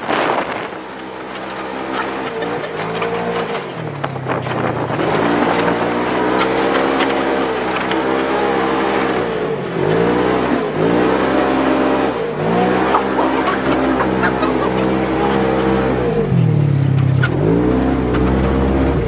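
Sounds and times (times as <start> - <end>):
vehicle engine revving: 0.0 - 19.0.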